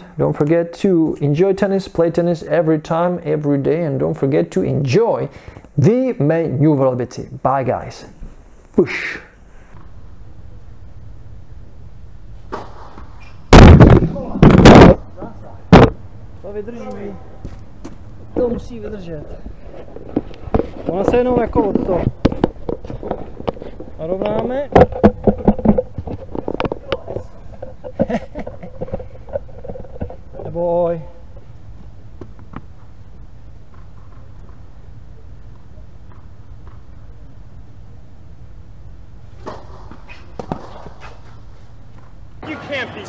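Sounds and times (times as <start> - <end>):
tennis ball being struck: 12.5 - 15.0.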